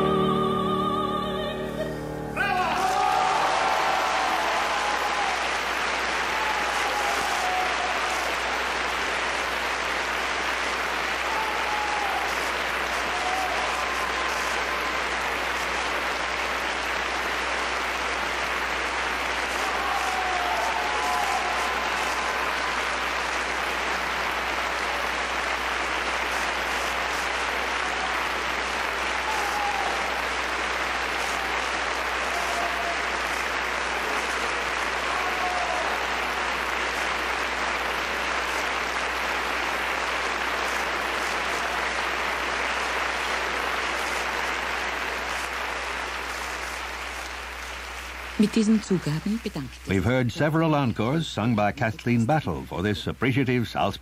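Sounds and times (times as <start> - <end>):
audience applauding: 2.4 - 53.6.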